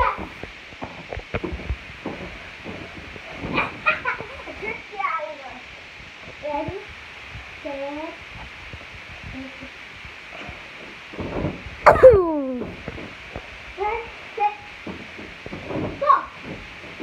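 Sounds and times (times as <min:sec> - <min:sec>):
rustle: 0:00.0 - 0:17.0
whooping cry sliding down: 0:11.9 - 0:12.6
short vocal sounds: 0:11.9 - 0:12.7.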